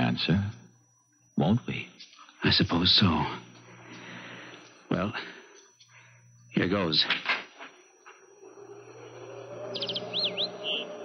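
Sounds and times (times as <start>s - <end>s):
low steady hum: 0.0s - 11.0s
birds chirping and whistling: 9.6s - 11.0s.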